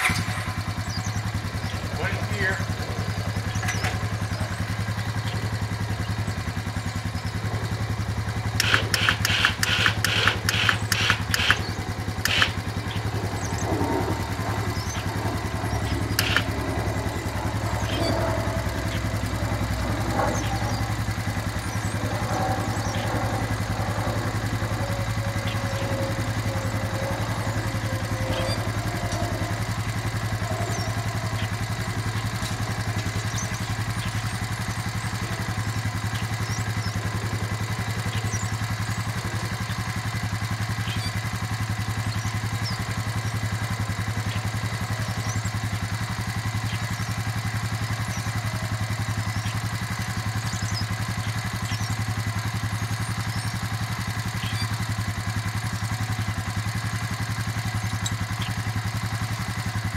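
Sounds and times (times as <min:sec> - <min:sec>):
atv engine idling: 0:00.0 - 0:59.9.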